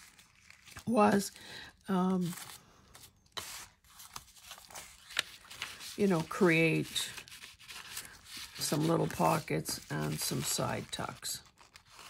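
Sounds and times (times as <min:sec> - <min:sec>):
paper rustling: 0:00.0 - 0:01.4, 0:02.1 - 0:12.0.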